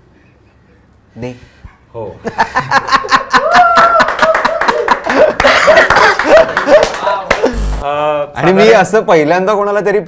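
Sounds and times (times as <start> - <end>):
men laughing loudly: 2.2 - 7.8.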